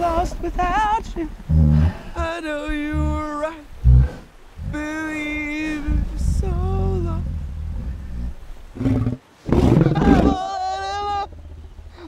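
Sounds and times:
deep gorilla grunts: 1.5 - 2.2.

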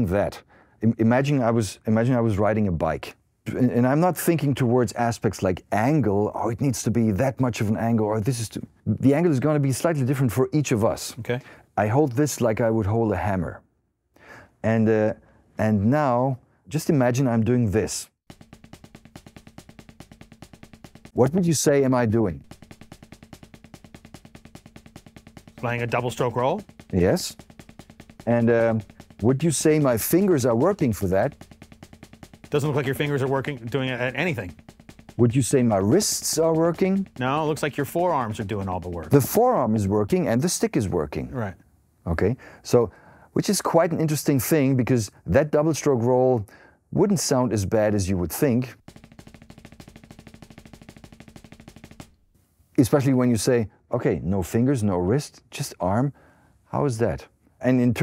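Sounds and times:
drumsticks rolling on practice pad: 18.3 - 40.7, 48.8 - 52.3.

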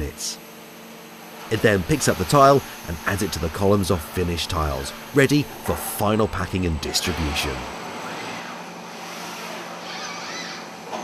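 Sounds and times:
factory machinery hum and hiss: 0.0 - 9.9
wavering whine: 1.5 - 9.0.

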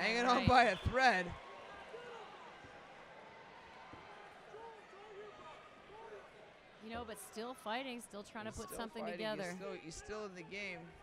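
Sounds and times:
crowd hubbub: 0.0 - 11.0.

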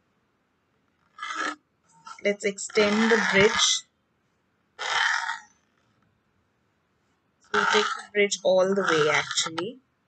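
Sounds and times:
pencil scratching on paper: 1.2 - 3.8, 7.5 - 9.6.

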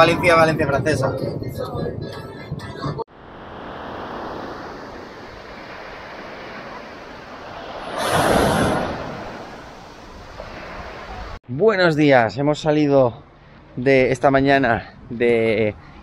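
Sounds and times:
waves on pebbly shore: 3.1 - 11.4.

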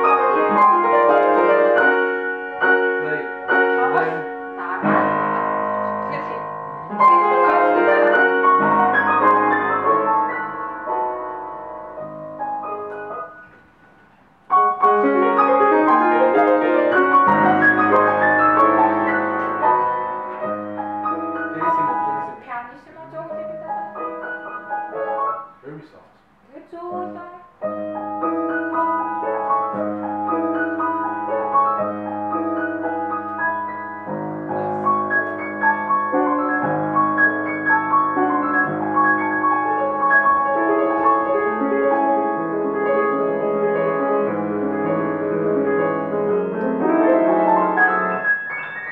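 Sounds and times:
grand piano chords: 0.0 - 48.9.

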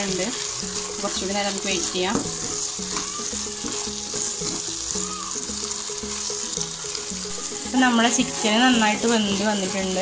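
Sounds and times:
filling sizzling in a hot pan: 0.0 - 10.0
spatula scraping a pan: 0.4 - 4.8.

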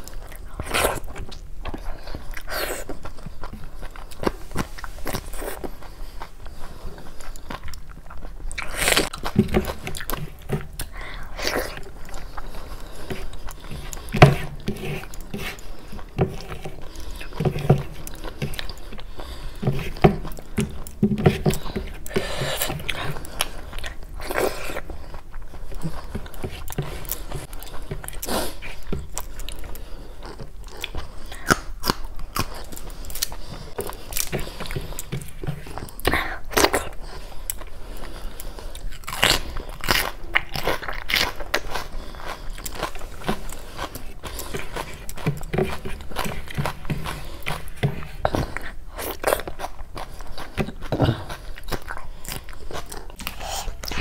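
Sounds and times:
wet chewing and lip smacks: 0.0 - 21.0
person chewing food: 0.0 - 54.0.

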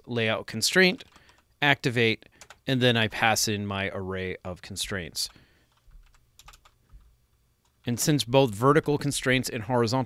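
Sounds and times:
computer keyboard keystrokes: 1.0 - 1.5, 2.4 - 2.6, 5.7 - 7.8.

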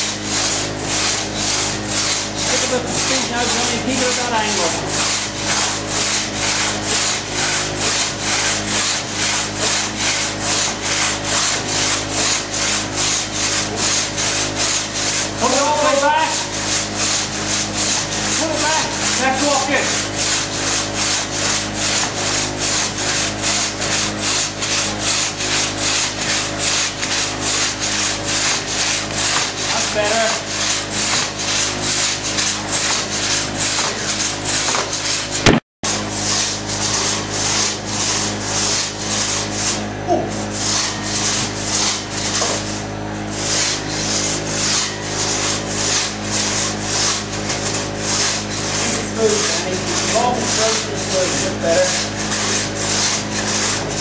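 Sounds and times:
crosscut saw rasping through log: 0.0 - 54.0.

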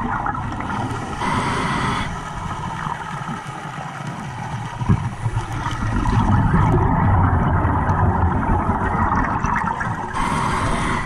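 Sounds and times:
muffled underwater rumble: 0.0 - 11.0.

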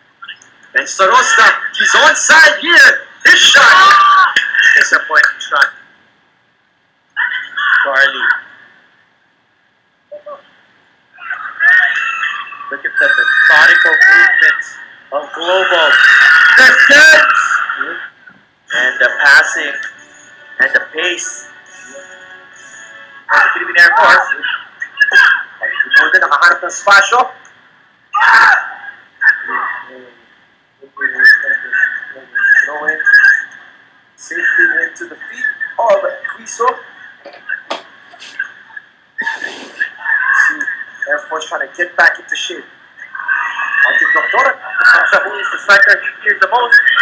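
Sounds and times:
broadcast voices: 0.0 - 6.1, 7.0 - 9.1, 10.1 - 47.0
broadcast music: 11.2 - 26.8.

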